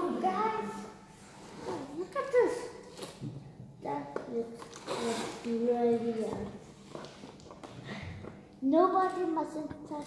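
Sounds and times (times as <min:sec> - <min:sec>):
children making vocal sounds: 0:00.0 - 0:06.6.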